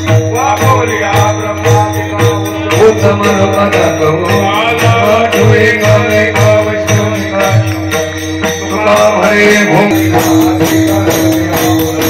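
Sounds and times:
drum: 0:00.0 - 0:12.0
hand cymbals struck: 0:00.0 - 0:12.0.

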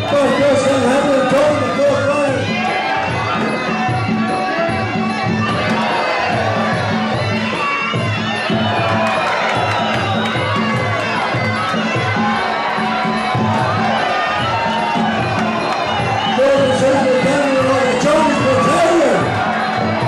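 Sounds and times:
crowd shouting and cheering: 0:00.0 - 0:20.0.

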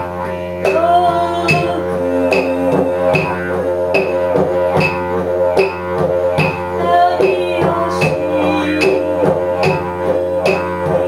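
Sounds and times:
didgeridoo drone: 0:00.0 - 0:11.0
sharp rhythmic accents: 0:00.0 - 0:11.0.

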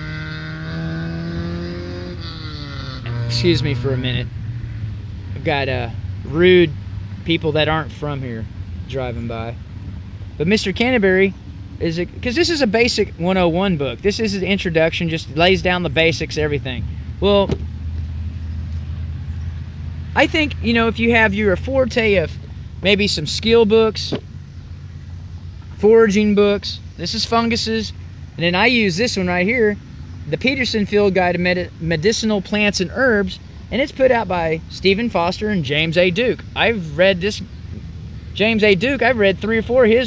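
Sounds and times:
motor vehicle engine hum: 0:00.0 - 0:40.0.

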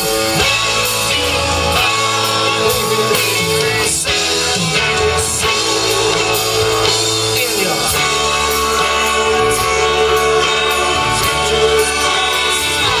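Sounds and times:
guitar: 0:00.0 - 0:13.0
live band playing instrumental: 0:00.0 - 0:13.0.

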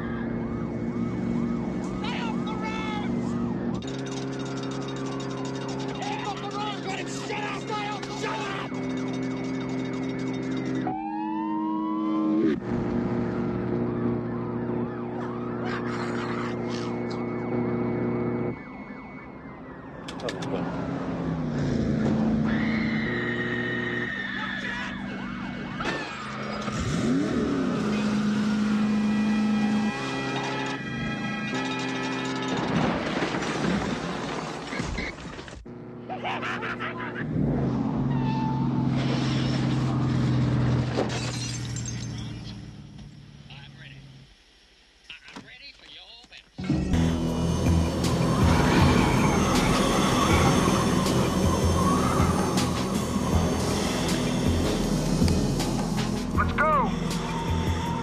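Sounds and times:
police sirens wailing: 0:00.0 - 0:32.8, 0:46.8 - 0:58.0
car and motorcycle engines: 0:00.0 - 0:33.5, 0:35.5 - 0:44.5, 0:46.6 - 0:58.0
film score: 0:46.6 - 0:58.0.

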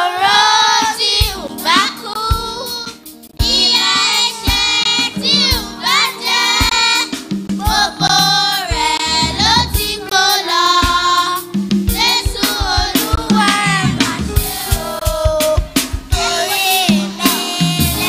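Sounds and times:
children singing together: 0:00.0 - 0:18.0
musical accompaniment: 0:00.0 - 0:18.0.

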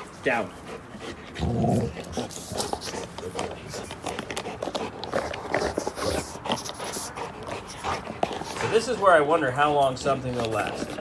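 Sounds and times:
dog chewing plastic toy: 0:01.8 - 0:09.3, 0:09.9 - 0:11.0.

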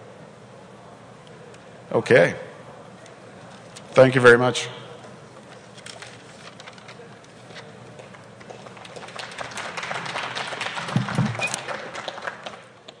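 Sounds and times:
audience applauding: 0:08.4 - 0:13.0.

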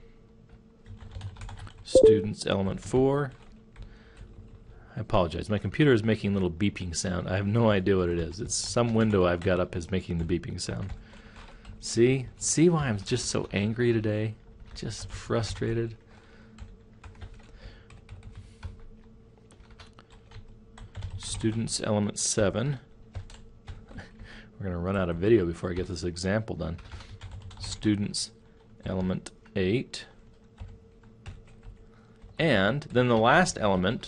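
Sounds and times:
faint steady hum: 0:00.0 - 0:34.0.

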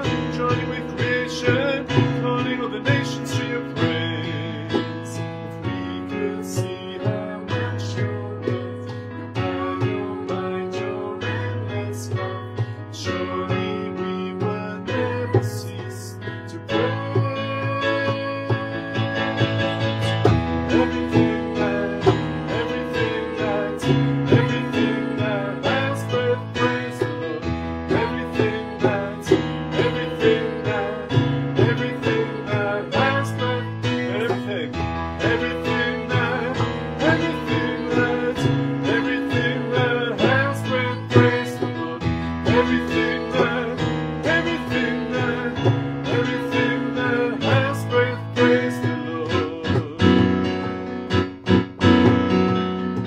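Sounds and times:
voices singing a worship song: 0:00.0 - 0:50.2
instrumental accompaniment with beat: 0:00.0 - 0:53.0.

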